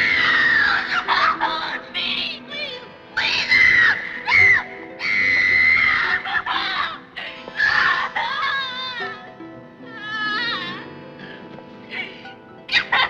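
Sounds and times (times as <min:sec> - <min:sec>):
woman screaming in distress: 0:00.0 - 0:01.8, 0:03.2 - 0:07.0
film music score: 0:00.0 - 0:13.0.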